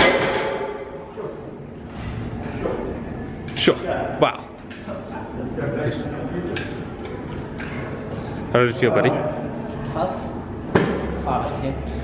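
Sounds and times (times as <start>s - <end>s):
gym background noise: 0.0s - 12.0s.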